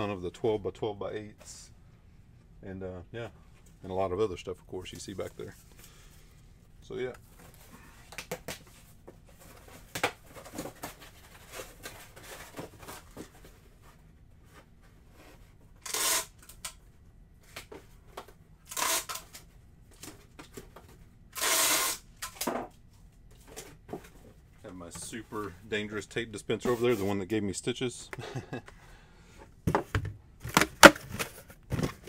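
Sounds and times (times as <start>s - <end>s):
packing tape ripping: 15.8s - 16.8s, 18.7s - 19.5s, 21.4s - 22.5s.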